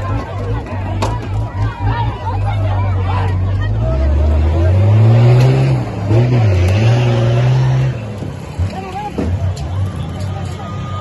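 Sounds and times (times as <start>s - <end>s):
crowd shouting: 0.0s - 11.0s
engine revving: 3.5s - 8.8s.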